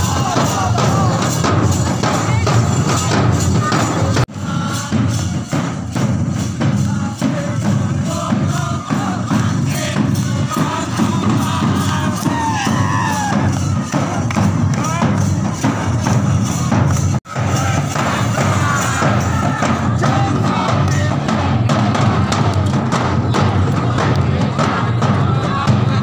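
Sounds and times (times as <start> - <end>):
crowd shouting and cheering: 0.0 - 26.0
hand drums beaten in rhythm: 0.0 - 26.0.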